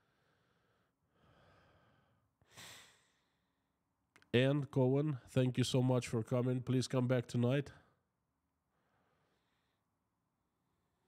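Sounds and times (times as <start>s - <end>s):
man breathing close to microphone: 0.0s - 3.7s, 8.7s - 10.0s.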